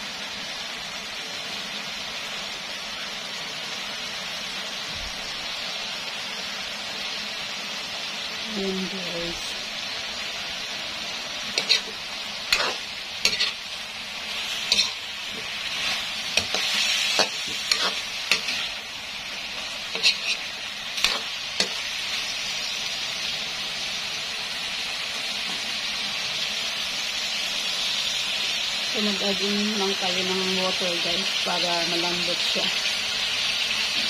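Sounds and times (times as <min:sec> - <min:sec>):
meat sizzling in a pan: 0:00.0 - 0:34.0
utensil scraping pan: 0:11.5 - 0:13.6, 0:14.4 - 0:18.7, 0:19.9 - 0:21.8.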